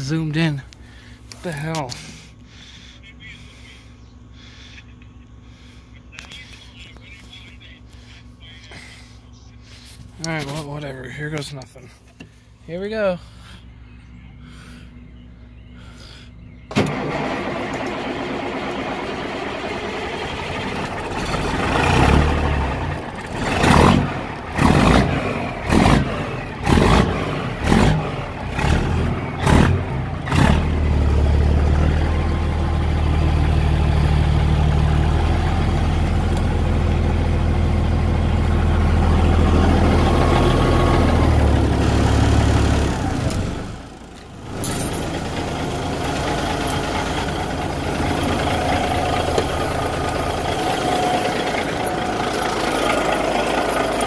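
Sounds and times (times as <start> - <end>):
diesel truck engine revving and idling: 12.9 - 54.0.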